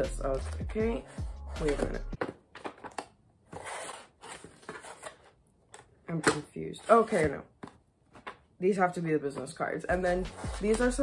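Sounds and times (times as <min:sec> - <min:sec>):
cardboard and paper rustling: 0:01.7 - 0:05.9.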